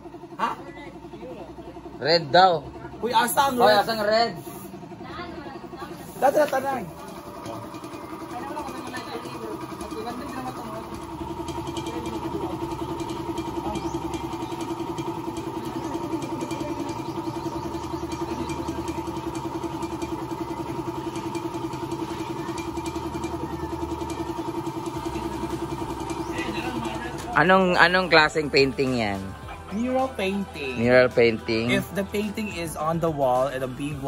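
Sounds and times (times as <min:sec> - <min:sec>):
small engine idling: 0:00.0 - 0:34.0.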